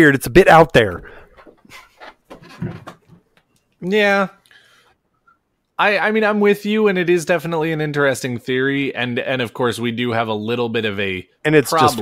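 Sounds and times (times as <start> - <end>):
soft breathy puffs of air: 4.5 - 5.0.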